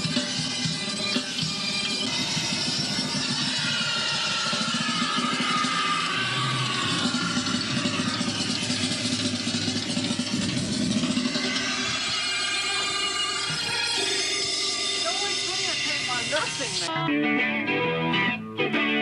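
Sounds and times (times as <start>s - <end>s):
motor engine running: 0.0s - 16.9s.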